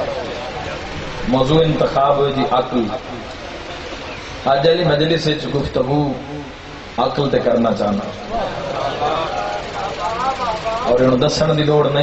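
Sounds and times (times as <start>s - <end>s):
man's voice: 1.3s - 3.2s, 7.0s - 12.0s.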